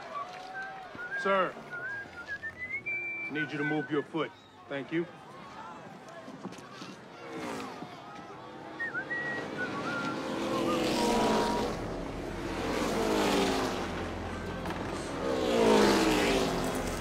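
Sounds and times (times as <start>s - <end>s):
race cars speeding past: 7.1s - 17.0s.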